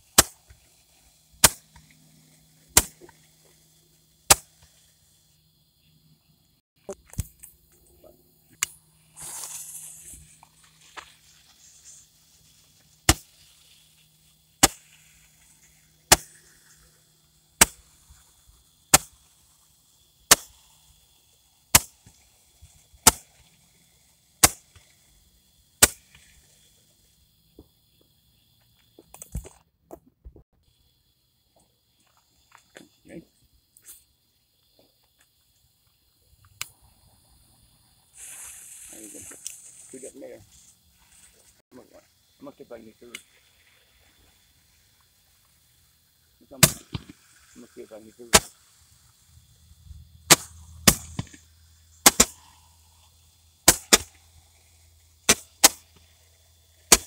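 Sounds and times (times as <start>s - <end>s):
firework pops: 0.0s - 3.6s, 4.2s - 4.9s, 6.8s - 7.8s, 8.5s - 14.0s, 14.6s - 19.6s, 20.3s - 21.0s, 21.7s - 23.7s, 24.4s - 25.0s, 25.8s - 26.7s, 28.9s - 30.4s, 38.2s - 41.9s, 43.0s - 43.7s, 46.5s - 48.8s, 50.3s - 52.6s, 53.6s - 54.2s, 55.3s - 56.1s
fuse sputtering sparks: 0.0s - 5.4s, 6.8s - 27.3s, 38.1s - 57.0s
torch lighter hissing: 0.0s - 5.8s, 8.4s - 27.7s, 38.1s - 57.0s.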